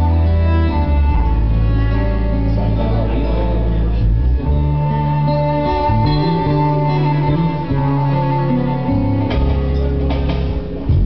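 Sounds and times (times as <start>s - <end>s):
acoustic guitar strumming: 0.0s - 11.0s
held low notes: 0.0s - 11.0s.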